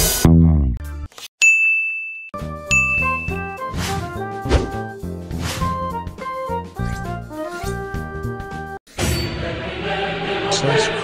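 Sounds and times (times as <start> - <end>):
high electronic ding: 1.5 - 3.6
background music: 2.4 - 11.0.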